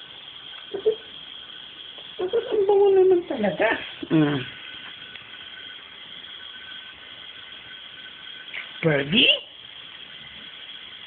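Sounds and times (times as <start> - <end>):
background hiss: 0.0 - 11.0
faint high whine: 0.0 - 11.0.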